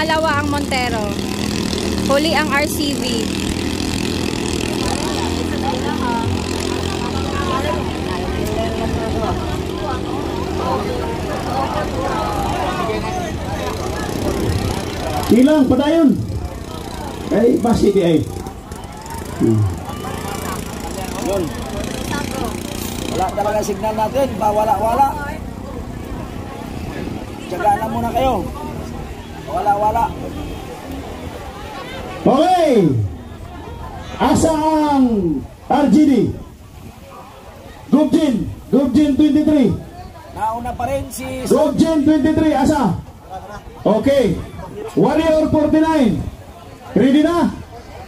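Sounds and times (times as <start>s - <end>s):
low outdoor rumble: 0.0s - 48.0s
onlookers talking: 0.0s - 48.0s
small boat engines racing: 0.0s - 48.0s.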